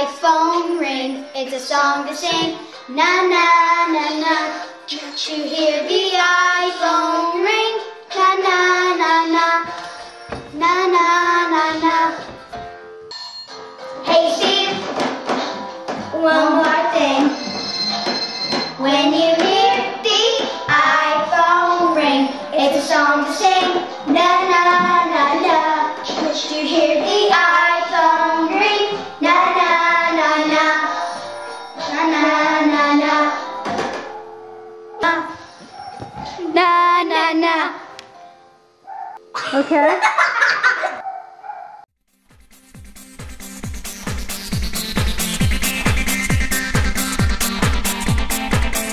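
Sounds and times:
piano: 0.0 - 41.1
children singing: 14.0 - 17.6, 18.6 - 31.2, 31.8 - 34.4.

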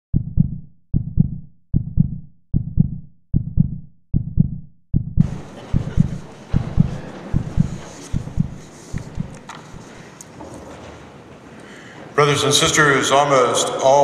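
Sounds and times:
heartbeat thumps: 0.1 - 10.0.

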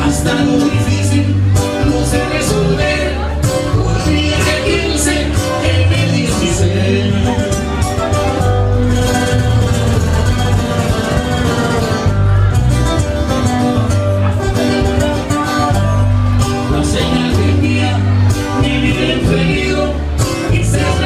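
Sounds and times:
man singing: 0.0 - 9.0, 14.6 - 21.0
acoustic guitars: 0.0 - 21.0
tuba bass line: 0.0 - 21.0.

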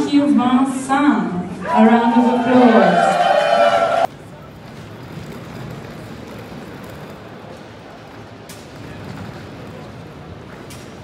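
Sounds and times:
large hall ambience: 0.0 - 11.0.

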